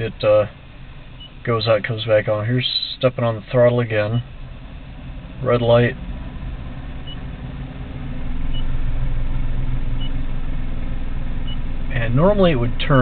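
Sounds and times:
electric drivetrain hum: 0:00.0 - 0:13.0.

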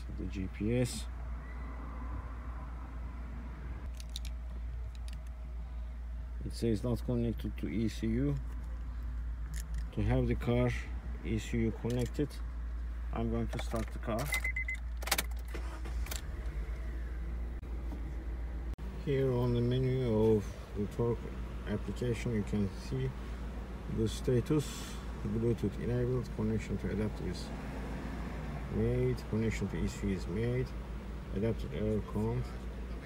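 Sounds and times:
car engine idling: 0:14.8 - 0:33.0.

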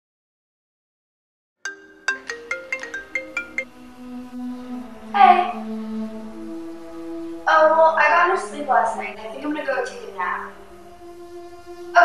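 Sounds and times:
marimba ringtone: 0:01.7 - 0:03.7.

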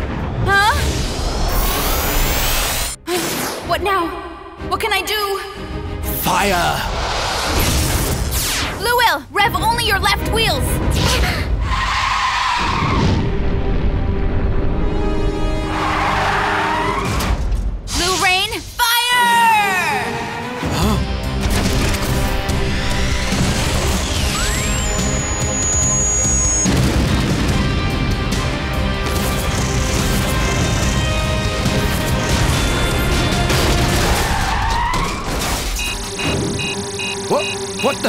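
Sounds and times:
dramatic music: 0:00.0 - 0:38.0
explosion booms and crashes: 0:26.6 - 0:28.2
quick electronic beeps: 0:35.8 - 0:38.0.

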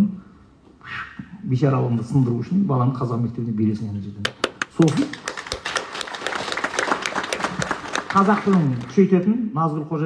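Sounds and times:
audience applauding: 0:04.3 - 0:09.2.

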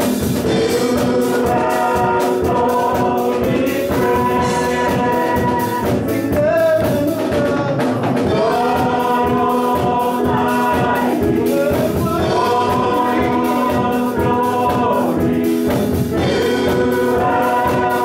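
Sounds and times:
group of voices singing: 0:00.0 - 0:18.0
instrumental accompaniment with beat: 0:00.0 - 0:18.0.

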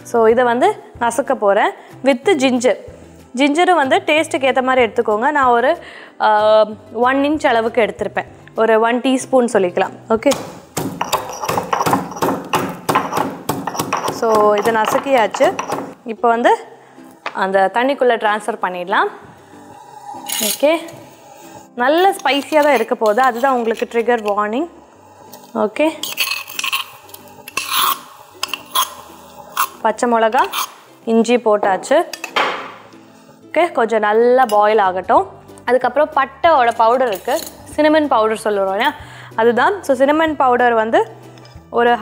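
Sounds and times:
stone pestle pounding in mortar: 0:10.3 - 0:16.0
metal spoon scraping stone mortar: 0:11.0 - 0:16.0, 0:19.6 - 0:31.0, 0:36.7 - 0:37.8.

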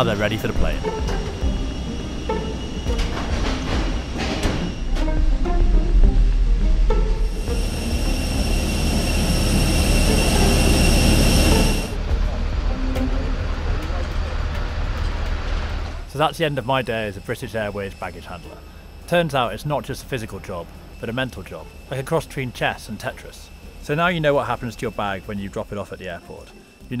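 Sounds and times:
jet engines whining: 0:00.0 - 0:27.0.

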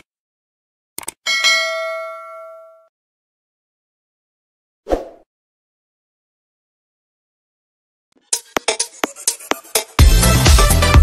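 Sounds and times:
bright bell ding: 0:01.3 - 0:02.9.

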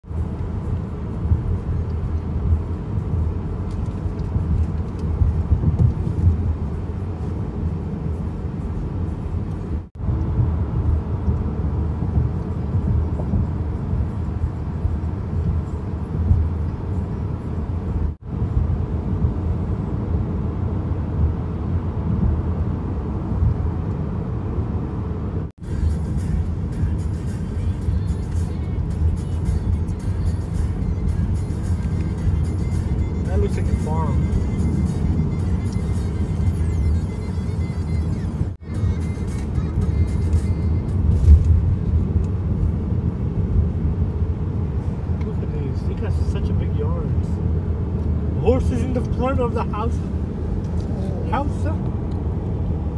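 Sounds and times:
road and engine noise in car: 0:00.0 - 0:52.9.

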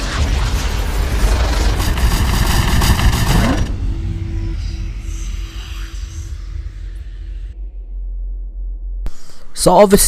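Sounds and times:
dense rush of noise: 0:00.0 - 0:07.6
deep rumble: 0:00.0 - 0:09.1
steady low tone: 0:00.0 - 0:09.4.

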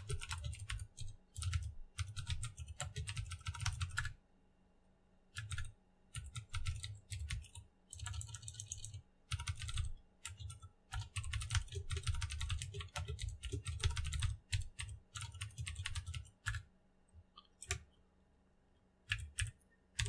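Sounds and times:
computer keyboard typing: 0:00.0 - 0:04.2, 0:05.3 - 0:16.8, 0:17.4 - 0:18.0, 0:19.0 - 0:20.0.

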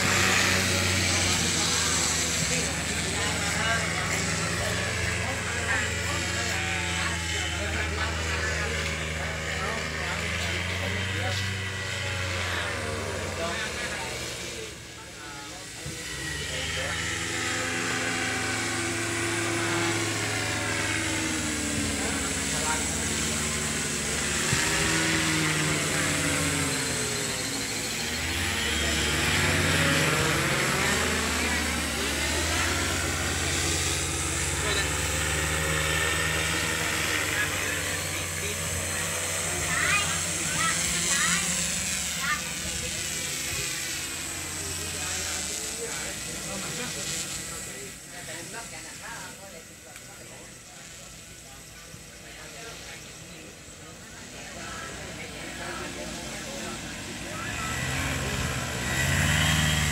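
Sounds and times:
paramotor engine droning: 0:00.0 - 0:59.9.

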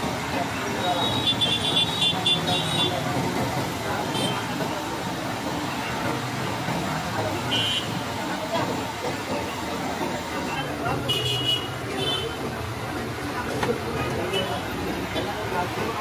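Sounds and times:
traffic: 0:00.0 - 0:16.0.

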